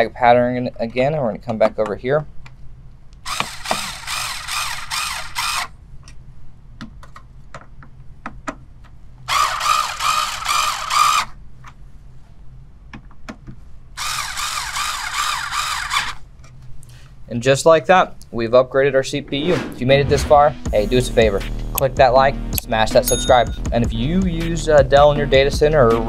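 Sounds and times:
electric screwdriver running: 0:03.3 - 0:05.7, 0:09.3 - 0:11.3, 0:14.0 - 0:16.2.

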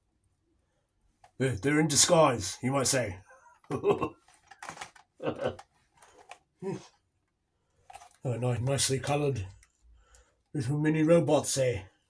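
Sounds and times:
plastic and card clicks and rustles: 0:03.6 - 0:06.9, 0:07.8 - 0:10.6.

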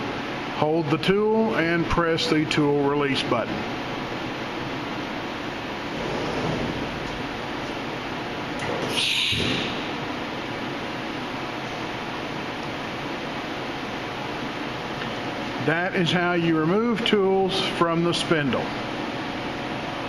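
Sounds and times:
milling machine hum: 0:00.0 - 0:20.0
ventilation: 0:00.0 - 0:20.0
sliding door swish: 0:05.9 - 0:06.9.

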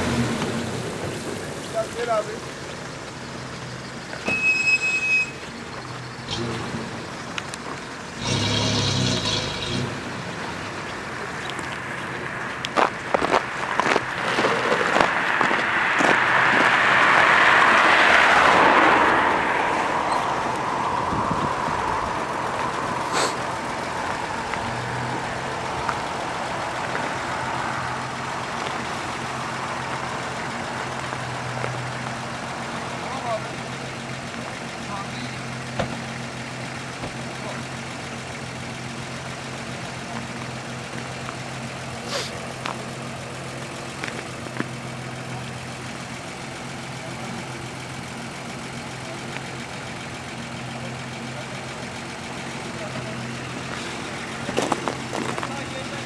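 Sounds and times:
suv engines idling: 0:00.0 - 0:56.0
faint voices: 0:46.8 - 0:56.0.

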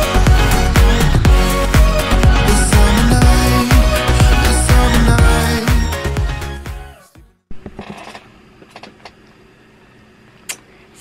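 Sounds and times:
pop music: 0:00.0 - 0:07.3.

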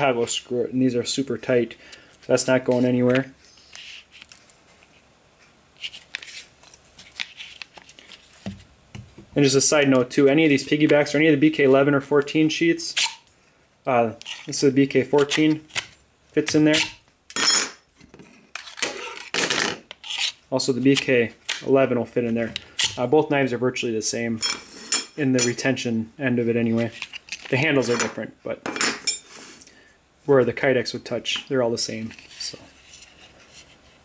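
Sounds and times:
plastic sheath handling rustles: 0:05.7 - 0:08.8, 0:26.7 - 0:28.0
knives rustling and scraping: 0:20.0 - 0:21.6.

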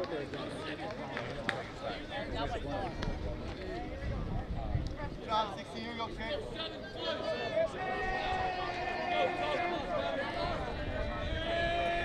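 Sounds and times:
voices calling and chattering: 0:00.0 - 0:12.0.

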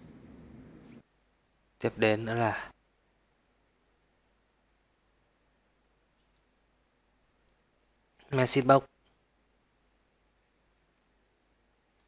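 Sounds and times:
faint computer keyboard clicks: 0:06.1 - 0:06.5.

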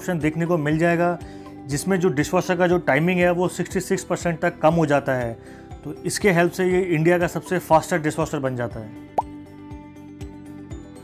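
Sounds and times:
background music with soft beat: 0:00.0 - 0:11.0.

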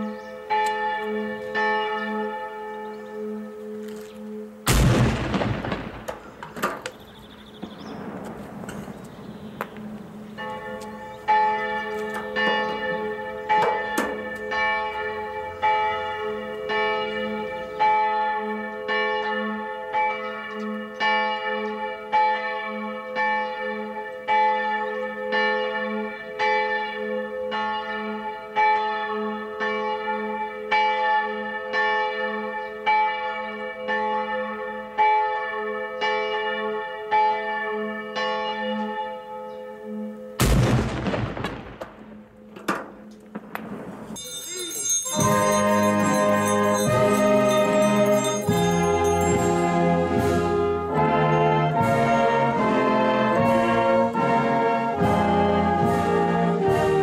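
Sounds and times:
church bells ringing: 0:00.0 - 0:06.2, 0:07.1 - 0:41.2, 0:43.6 - 0:57.0.

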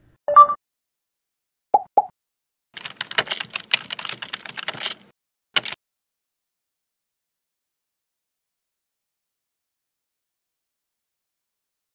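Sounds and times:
computer keyboard key clicks: 0:02.8 - 0:05.0, 0:05.6 - 0:05.8.

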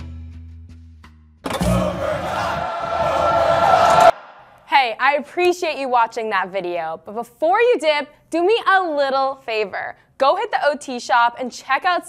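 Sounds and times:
rushing sound effect: 0:01.6 - 0:04.7.

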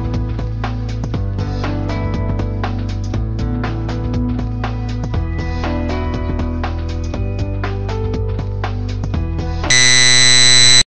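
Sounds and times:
background music: 0:00.0 - 0:09.9
loud electronic buzz: 0:09.7 - 0:10.8.

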